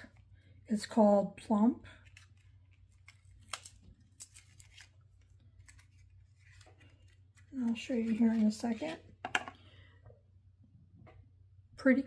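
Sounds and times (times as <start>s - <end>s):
packaging handling noises: 2.0s - 9.1s.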